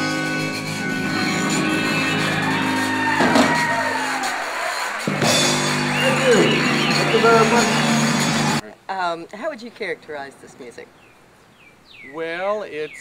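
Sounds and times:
sliding arching notes: 0:00.0 - 0:08.6
zydeco band playing: 0:00.0 - 0:08.6.

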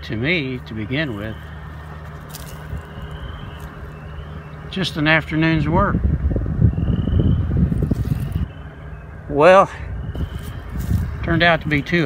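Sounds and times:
wind buffeting microphone: 0:00.3 - 0:12.0.

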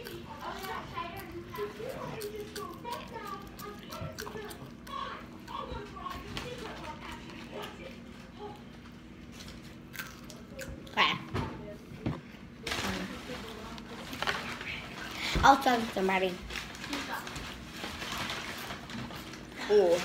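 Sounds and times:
chewing noises: 0:00.0 - 0:11.2
boys' voices: 0:15.2 - 0:16.4.

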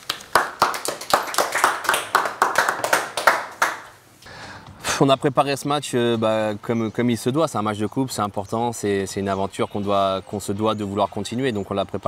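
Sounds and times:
people clapping hands: 0:00.0 - 0:04.0.

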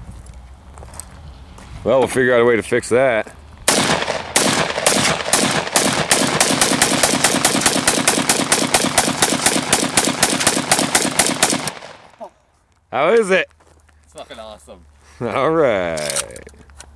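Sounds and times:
rifle firing rapid shots: 0:03.7 - 0:12.2.

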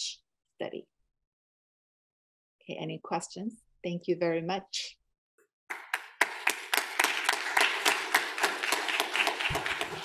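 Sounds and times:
audience applauding: 0:05.7 - 0:10.0.

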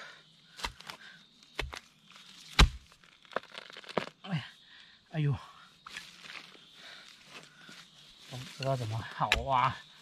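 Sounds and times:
hoe chopping into soil: 0:01.6 - 0:04.1, 0:09.2 - 0:09.6.

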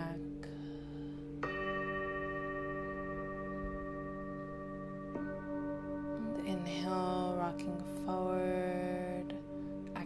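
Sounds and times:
ringing bell-like chord: 0:00.0 - 0:10.0.

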